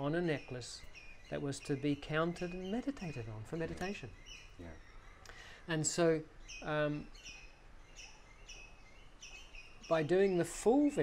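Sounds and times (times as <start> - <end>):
bird chirping: 0.0 - 11.0.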